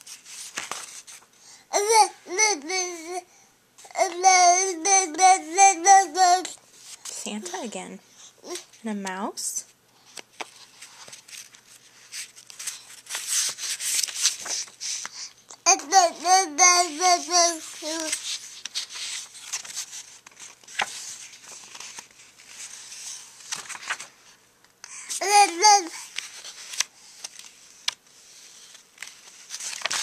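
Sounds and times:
toddler chanting: 3.9 - 6.5, 15.7 - 18.2, 25.2 - 26.0.

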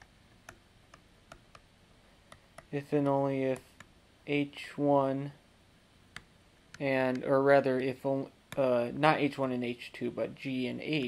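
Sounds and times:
stylus tapping on tablet screen: 0.0 - 4.0, 6.1 - 7.3.

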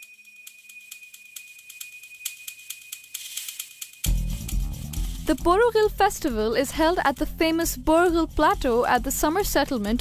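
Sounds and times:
sharp irregular ticks and rattles: 0.0 - 5.1.

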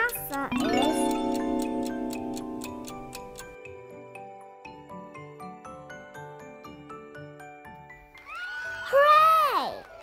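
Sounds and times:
clock-like ticking: 0.0 - 3.6.

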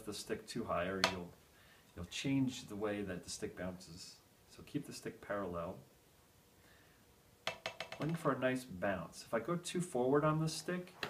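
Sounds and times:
drumstick bouncing on practice pad: 7.4 - 8.2.

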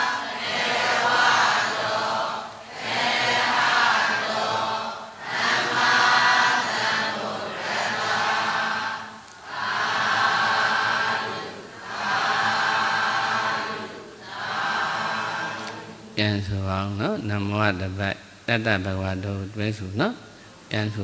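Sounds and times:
group chanting in unison: 0.0 - 16.2.

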